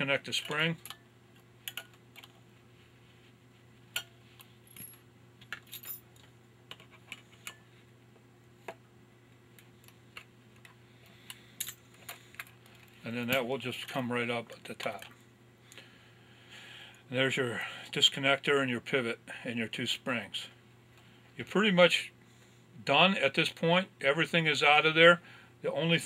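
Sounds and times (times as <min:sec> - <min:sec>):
faint steady hum: 0:00.0 - 0:26.0
small metal parts clicking: 0:01.6 - 0:02.4.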